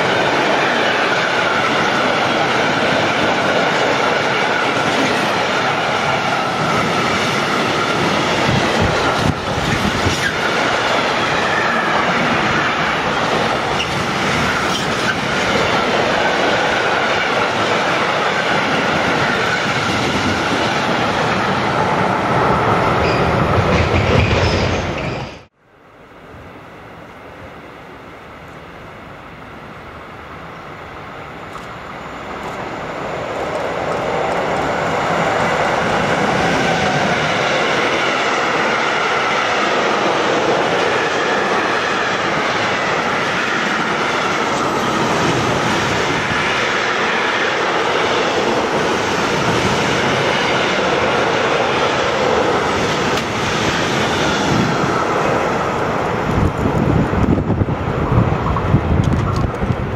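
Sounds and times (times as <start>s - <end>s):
freight train passing: 0.0s - 59.9s.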